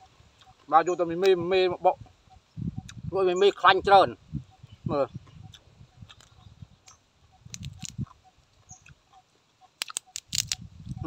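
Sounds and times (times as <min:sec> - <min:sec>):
crab shell cracking: 0:07.5 - 0:08.0, 0:09.8 - 0:10.6.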